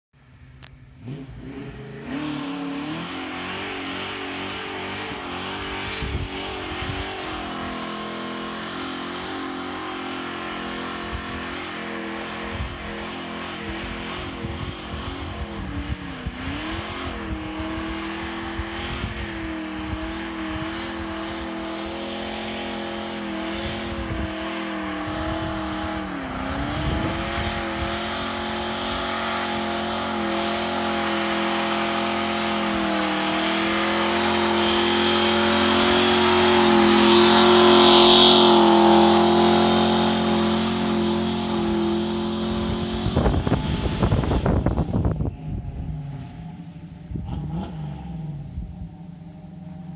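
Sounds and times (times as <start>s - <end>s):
truck engine revving high: 0.9s - 49.9s.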